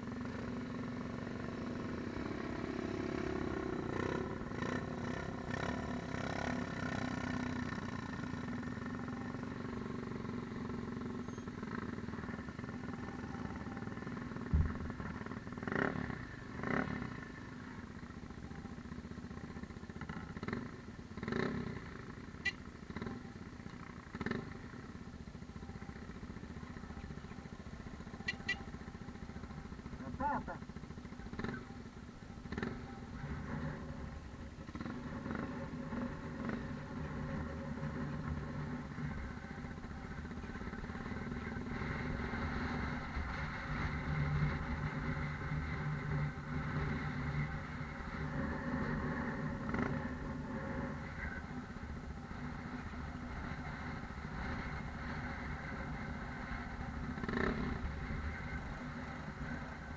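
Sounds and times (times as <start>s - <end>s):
motorcycle engine running at low revs: 0.0s - 59.9s.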